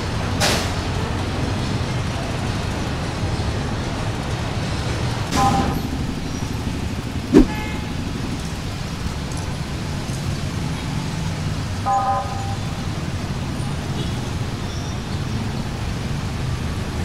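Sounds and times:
city street traffic hum: 0.0s - 17.0s
sharp knock with short tone: 7.4s - 7.8s.

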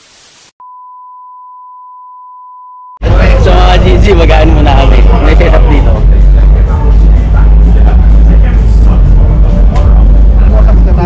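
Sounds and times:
steady high test tone beep: 0.6s - 3.0s.

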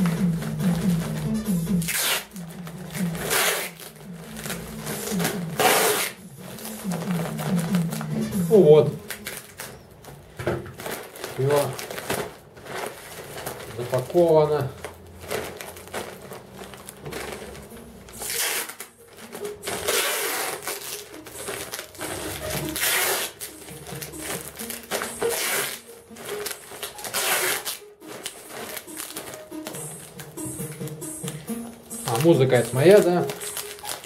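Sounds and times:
faint music: 0.0s - 34.0s
packing tape pulled off roll: 0.0s - 34.0s
plastic bag crinkling: 0.0s - 34.0s.

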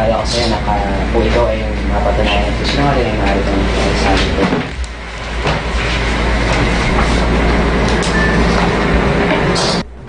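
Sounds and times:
air conditioner running: 0.0s - 10.0s.

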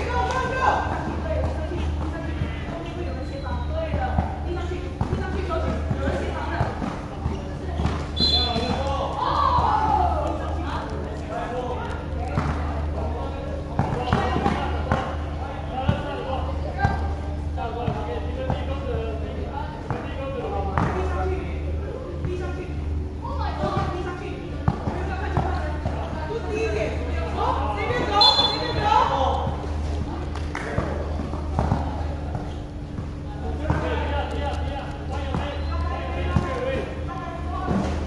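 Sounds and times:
basketball bouncing on court: 1.3s - 8.9s
loud shouted voices: 8.2s - 10.4s.

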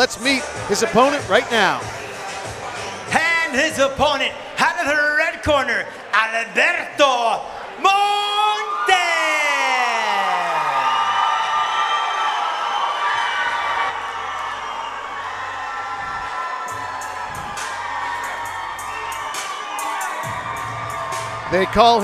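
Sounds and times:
crowd cheering in a hall: 0.0s - 22.0s.

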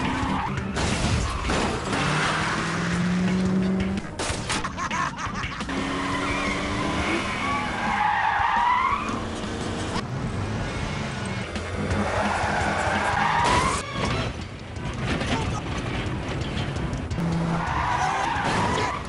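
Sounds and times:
car tyres squealing: 0.0s - 0.6s, 5.7s - 9.4s, 11.2s - 14.4s, 17.3s - 19.0s
car engine noise: 0.0s - 19.0s.

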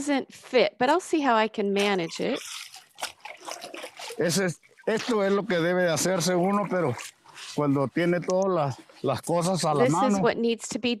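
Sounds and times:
water trickling and dripping: 1.8s - 9.9s
man speaking: 4.2s - 10.3s.

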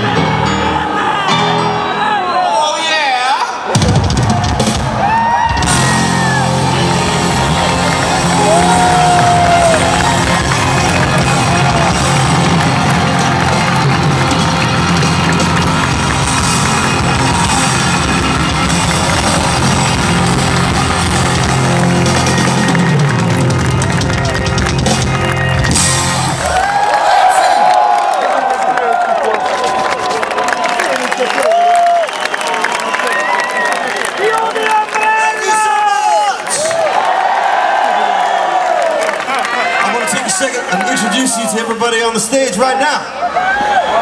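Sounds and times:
rock band playing live: 0.0s - 2.6s, 3.6s - 26.8s
crowd whooping and cheering: 0.0s - 44.0s.

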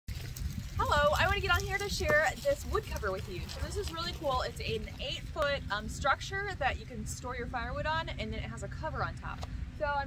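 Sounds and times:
woman speaking: 0.8s - 10.0s.

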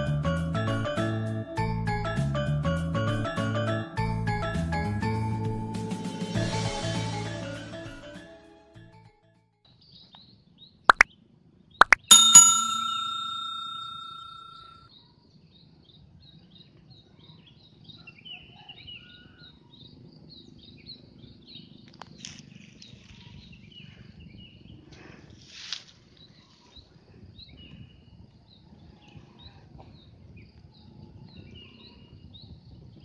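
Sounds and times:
bell-like ding: 11.8s - 14.8s.

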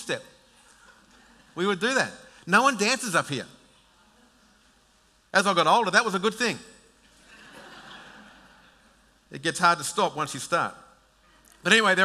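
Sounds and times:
congregation laughing quietly: 0.6s - 1.8s, 7.0s - 9.2s.

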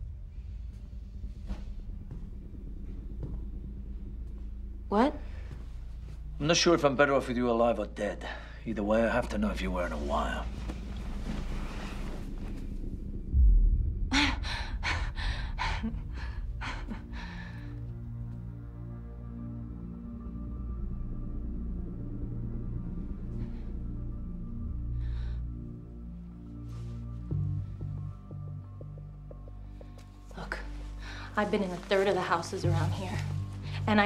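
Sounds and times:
soft music: 0.0s - 13.4s, 14.1s - 34.0s
low rumbling drone: 0.0s - 34.0s
faint rustles: 9.8s - 13.2s.

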